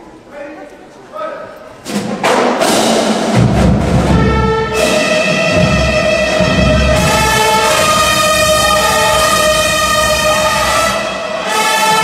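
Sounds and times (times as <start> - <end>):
marching band playing: 1.8 - 12.0
sharp percussion hits: 1.8 - 12.0
loud brass: 4.0 - 12.0.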